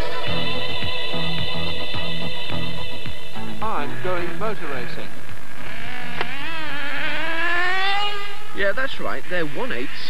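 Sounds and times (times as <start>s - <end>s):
model car engine buzzing: 5.5s - 8.6s.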